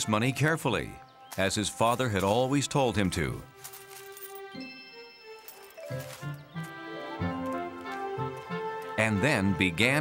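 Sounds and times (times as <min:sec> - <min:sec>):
melody of held notes: 0:04.5 - 0:09.0.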